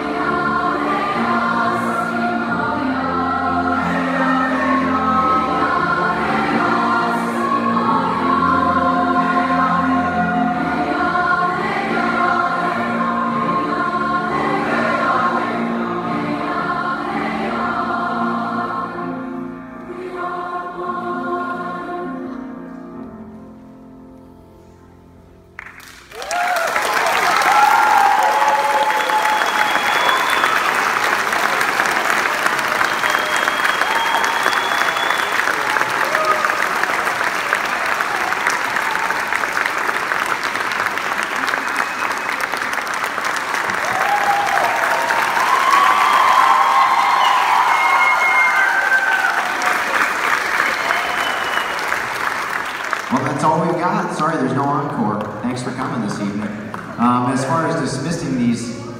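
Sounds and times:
audience applauding: 25.6 - 57.8
people cheering: 26.1 - 53.4
whistles: 28.8 - 30.9, 32.7 - 35.8, 41.6 - 42.7, 45.6 - 49.3, 50.4 - 52.2.

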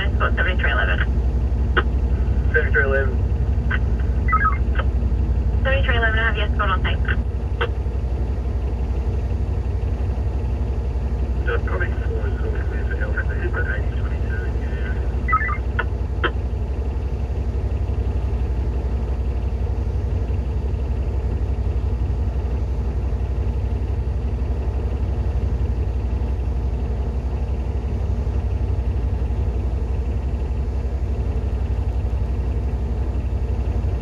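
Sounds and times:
diesel engine idling: 0.0 - 34.0.

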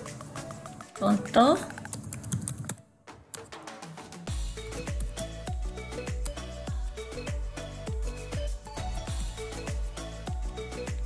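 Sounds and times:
computer keyboard typing: 1.1 - 3.5.

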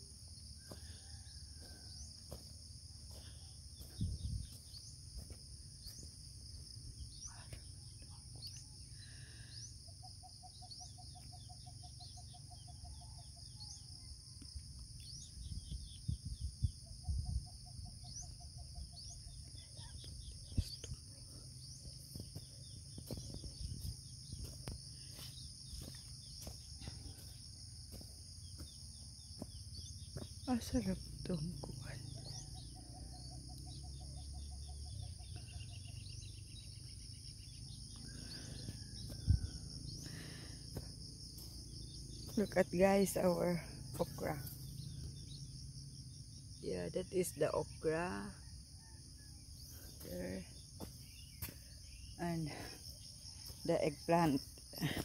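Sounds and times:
insects chirping chorus: 0.0 - 55.0.

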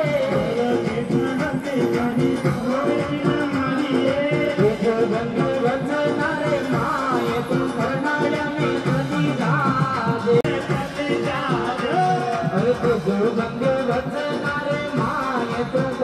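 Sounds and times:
devotional song over loudspeakers: 0.0 - 16.0.

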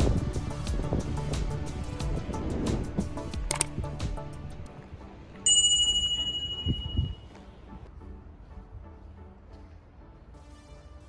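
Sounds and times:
bright bell ding: 5.5 - 7.3.

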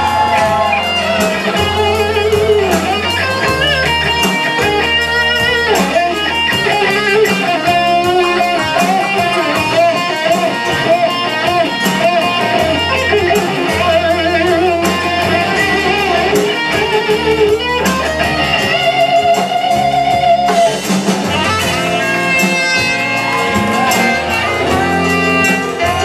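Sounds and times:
bass guitar: 0.0 - 26.0
electric guitars: 0.0 - 26.0
steady drum beat: 0.0 - 26.0.

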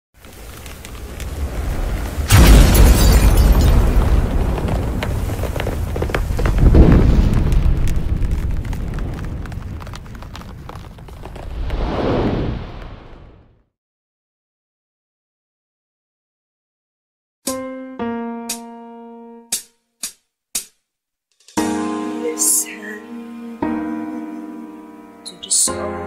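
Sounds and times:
crackling: 0.2 - 13.5
heavy boom: 2.3 - 5.5, 6.4 - 13.5.

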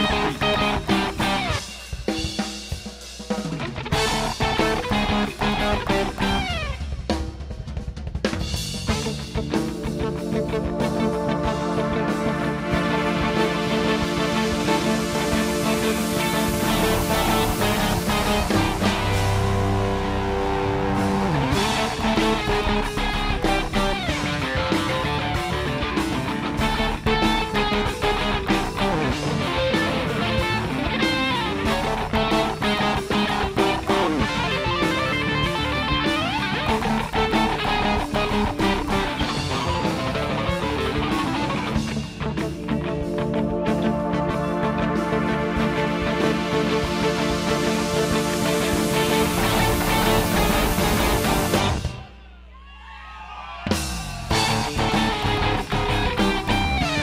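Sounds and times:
electric guitar sliding notes: 0.0 - 1.8, 3.6 - 6.9, 8.9 - 52.1, 54.3 - 57.0
rock band playing: 0.0 - 52.3, 53.6 - 57.0.

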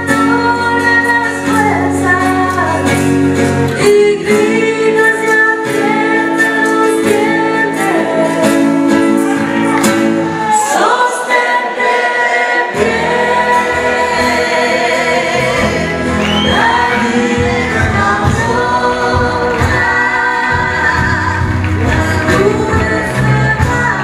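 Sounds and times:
live band playing blues: 0.0 - 10.7, 12.6 - 24.0.

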